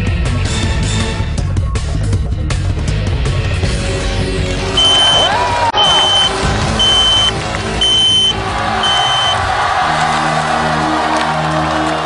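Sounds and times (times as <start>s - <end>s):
electronic timer beeps: 4.8s - 9.4s
loud stage music: 4.8s - 9.8s.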